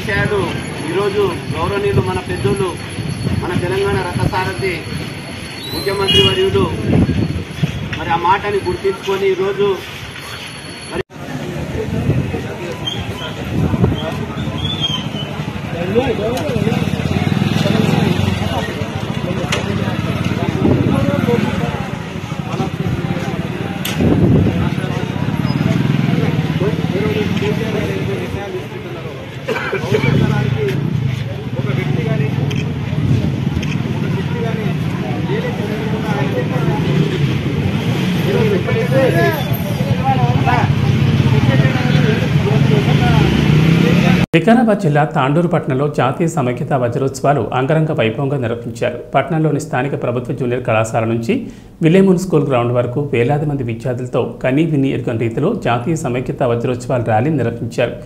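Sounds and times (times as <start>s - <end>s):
people talking: 3.4s - 4.9s, 5.8s - 7.0s, 8.0s - 9.9s, 15.4s - 37.2s, 38.2s - 58.0s.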